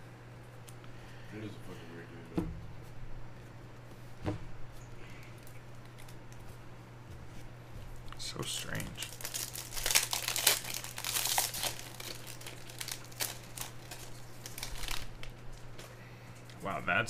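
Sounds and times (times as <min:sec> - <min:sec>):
wrapper being torn and crinkled: 0:08.4 - 0:15.9.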